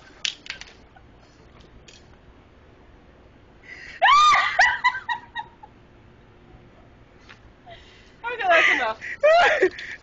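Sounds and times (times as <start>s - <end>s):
woman shrieking: 4.0s - 4.7s
woman squealing: 4.0s - 4.7s.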